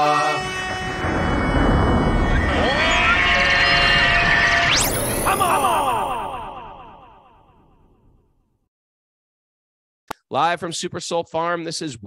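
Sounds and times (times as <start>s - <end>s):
deep rumbling music swell: 0.4s - 5.2s.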